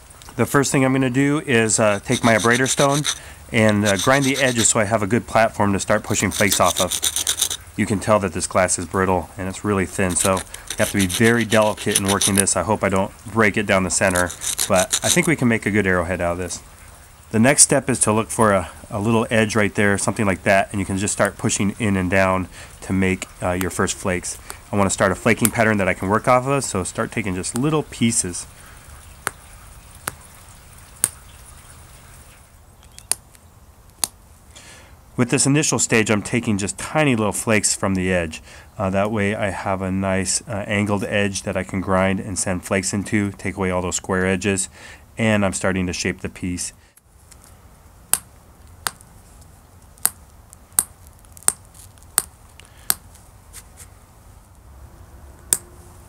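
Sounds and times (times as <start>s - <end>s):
glass flakes popping clicks: 10.0s - 12.6s, 32.8s - 34.2s
glass flakes snapping clicks: 32.9s - 34.2s.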